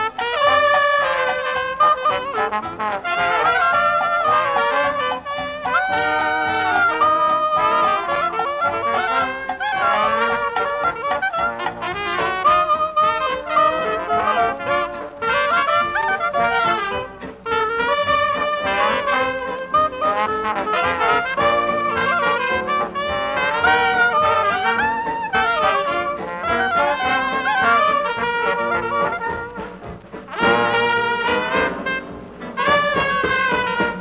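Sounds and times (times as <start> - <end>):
clarinet: 0.0 - 34.0
jazz band playing: 0.0 - 34.0
trombone: 0.0 - 34.0
trumpet: 0.0 - 34.0.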